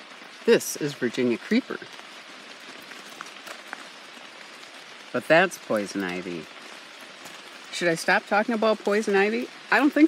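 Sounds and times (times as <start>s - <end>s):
drips ticking on leaves: 0.0s - 10.0s
light rain on foliage: 0.0s - 10.0s.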